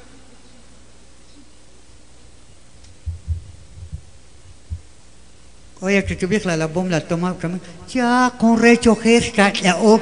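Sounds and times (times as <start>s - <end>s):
faint steady hum: 0.0s - 10.0s
deep dull thumps: 3.0s - 5.0s.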